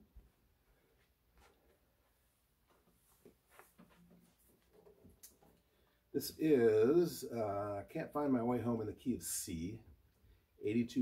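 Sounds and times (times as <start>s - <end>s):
acoustic guitar being handled: 2.7s - 5.8s.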